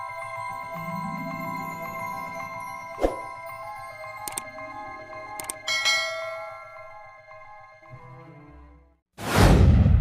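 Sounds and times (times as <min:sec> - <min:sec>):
ringing chime tones: 0:00.0 - 0:07.8
bright bell chime: 0:05.6 - 0:07.4.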